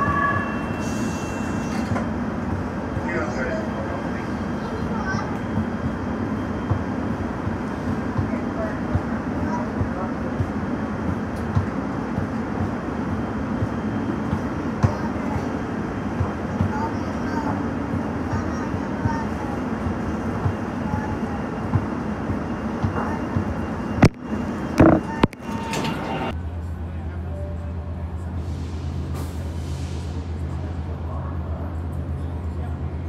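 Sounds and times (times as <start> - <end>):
train rumble in tunnel: 0.0 - 33.0.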